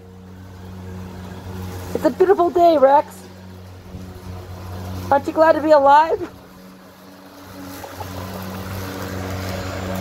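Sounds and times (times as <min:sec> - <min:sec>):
engine humming: 0:00.0 - 0:10.0.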